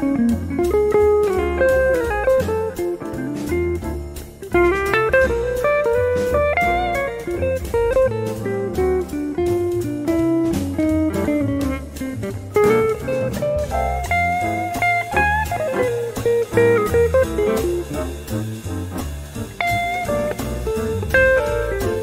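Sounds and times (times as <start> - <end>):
backing track with bass line: 0.0 - 22.0
electric guitar jazz solo: 0.0 - 22.0.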